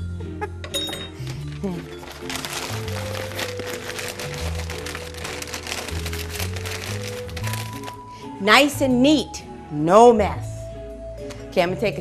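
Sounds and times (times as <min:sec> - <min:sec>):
background music: 0:00.0 - 0:12.0
newspaper crinkling and rustling: 0:01.2 - 0:08.1.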